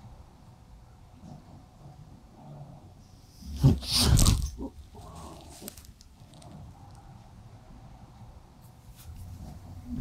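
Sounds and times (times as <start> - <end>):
faint rustles: 3.0 - 7.4.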